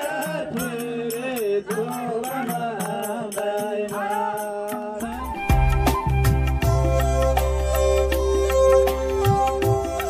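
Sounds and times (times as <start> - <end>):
folk singing: 0.0 - 5.6
small hand cymbals: 6.2 - 10.0.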